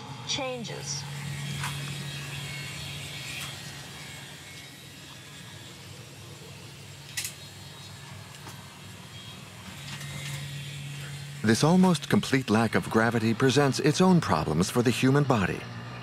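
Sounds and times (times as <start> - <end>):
ventilation fans humming: 0.0 - 16.0.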